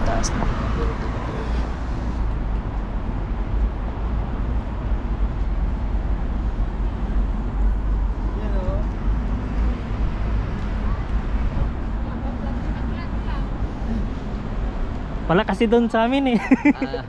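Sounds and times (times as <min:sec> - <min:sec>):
road traffic rumble: 0:00.0 - 0:17.0.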